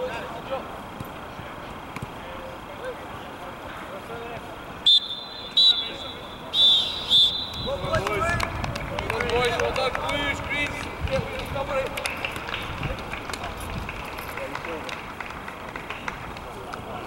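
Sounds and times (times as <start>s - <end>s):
players shouting and calling: 0.0s - 13.6s
outdoor background noise: 0.0s - 17.0s.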